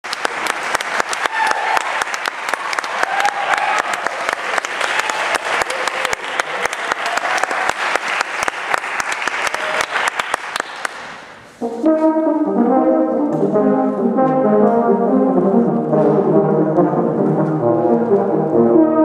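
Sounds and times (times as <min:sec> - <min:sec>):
audience applauding: 0:00.0 - 0:11.4.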